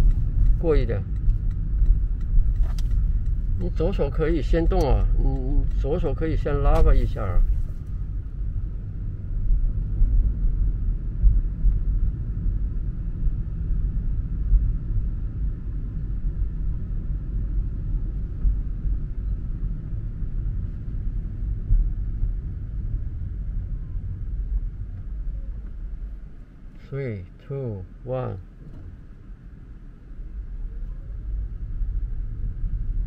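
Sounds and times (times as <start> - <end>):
car road rumble and tyre noise: 0.0 - 33.0.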